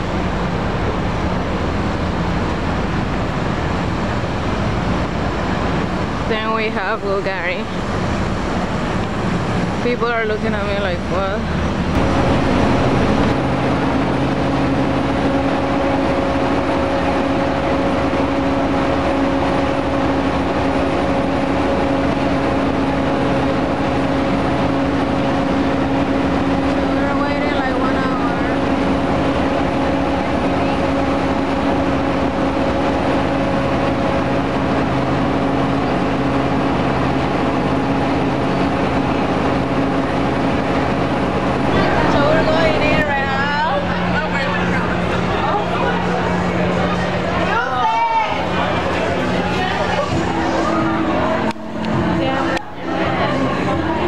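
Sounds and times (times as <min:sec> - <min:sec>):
city street noise: 0:00.0 - 0:54.0
large engine humming: 0:00.0 - 0:54.0
voices passing: 0:05.3 - 0:54.0.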